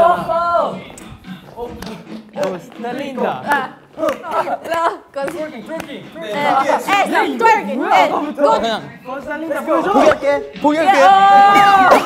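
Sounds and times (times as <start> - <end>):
excited voices calling out: 6.1 - 12.0.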